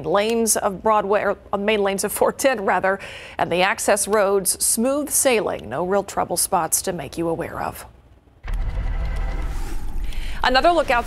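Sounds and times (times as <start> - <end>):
rising whoosh: 8.5 - 10.2.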